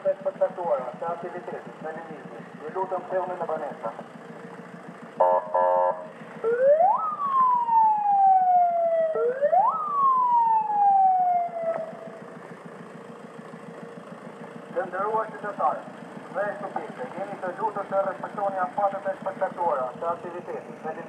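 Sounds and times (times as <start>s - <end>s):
low engine hum: 0.0s - 21.0s
buzzy horn blasts: 5.2s - 6.1s
police siren wailing: 5.2s - 12.4s.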